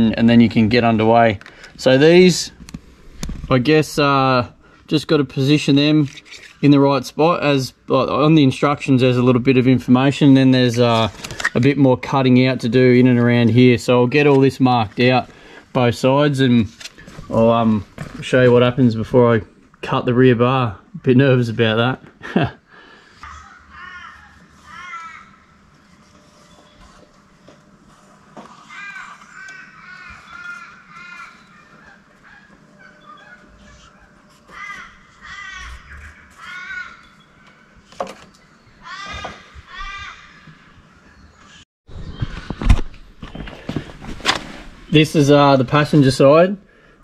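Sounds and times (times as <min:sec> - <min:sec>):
crows cawing: 0:23.2 - 0:25.5, 0:28.5 - 0:37.7, 0:38.8 - 0:40.7.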